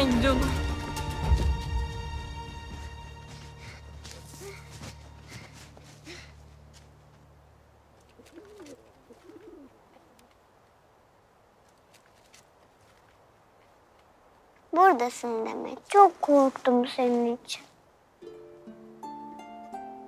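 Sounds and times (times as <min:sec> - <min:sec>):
bird calling: 0:08.1 - 0:10.2.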